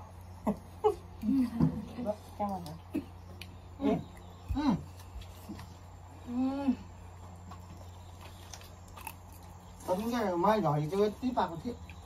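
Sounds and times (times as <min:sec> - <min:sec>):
faint chewing: 0:00.1 - 0:12.0.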